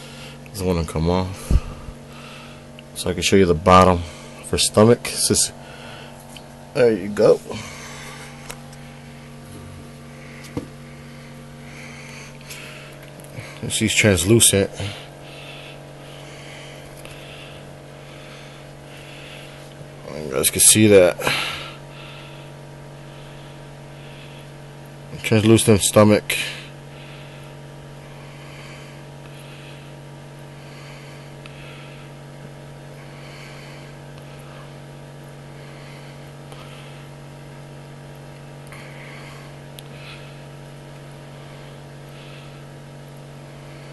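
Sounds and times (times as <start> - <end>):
steady low hum: 0.0 - 43.9.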